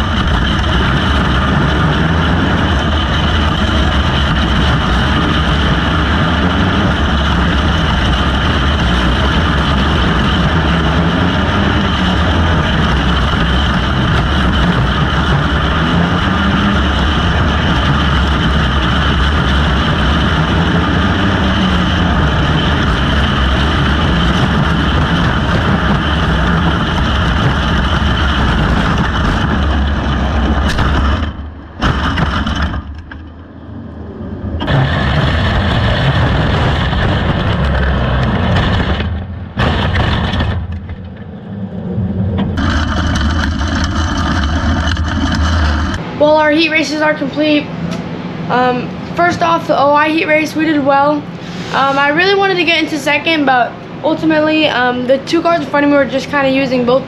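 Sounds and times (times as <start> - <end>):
kart engine at racing speed: 0.0 - 46.4, 47.1 - 57.0
other karts running nearby: 0.0 - 57.0.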